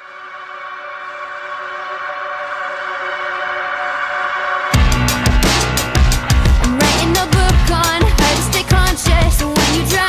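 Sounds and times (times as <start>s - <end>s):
held synthesizer chord: 0.0s - 9.3s.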